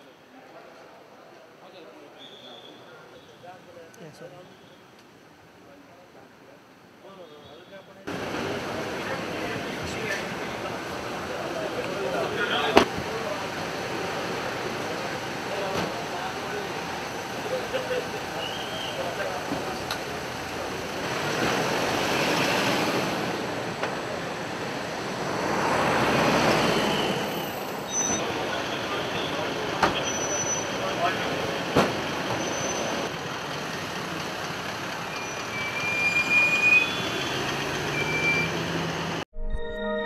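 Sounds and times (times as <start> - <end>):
vehicle noise: 8.0 - 39.3
background voices: 8.1 - 26.9
outro music: 39.3 - 40.0.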